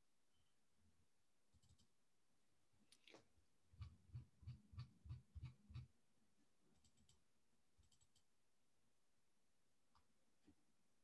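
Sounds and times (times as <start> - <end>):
computer keyboard tapping: 3.8 - 5.9.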